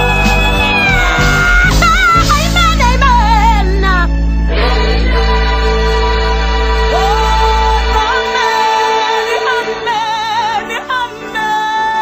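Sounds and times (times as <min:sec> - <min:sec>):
choir of young voices singing: 0:04.5 - 0:10.9.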